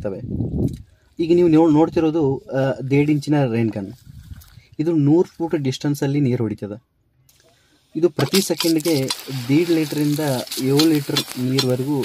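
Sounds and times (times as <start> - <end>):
man talking: 1.2 - 4.0, 8.0 - 12.0
water spraying from sprinkler: 8.2 - 12.0.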